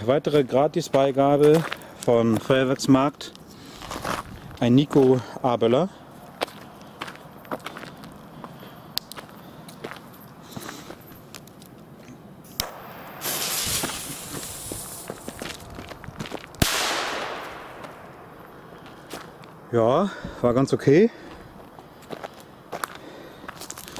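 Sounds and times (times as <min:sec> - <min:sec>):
footsteps: 0:00.0 - 0:05.5, 0:06.1 - 0:12.6, 0:13.2 - 0:16.7, 0:17.4 - 0:23.9
firecracker fuse fizzing: 0:12.5 - 0:15.7
firecracker bang: 0:12.6 - 0:15.6, 0:16.6 - 0:18.3.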